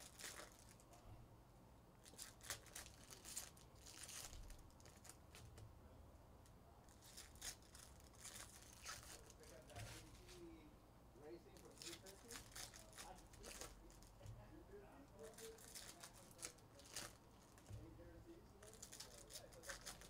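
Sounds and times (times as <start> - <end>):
foil wrappers crinkling and tearing: 0.0 - 0.9, 2.0 - 5.6, 6.9 - 10.4, 11.4 - 14.3, 15.2 - 17.8, 18.5 - 20.0.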